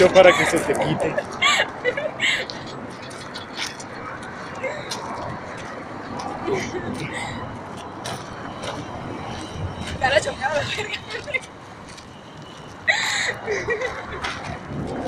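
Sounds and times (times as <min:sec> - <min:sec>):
steady background noise: 0:00.0 - 0:15.0.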